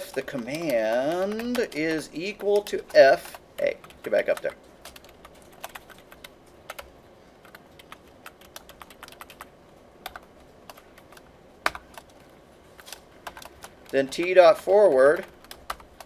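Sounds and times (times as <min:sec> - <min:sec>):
typing on computer keyboard: 0:00.0 - 0:12.2, 0:12.9 - 0:14.3, 0:15.2 - 0:16.0.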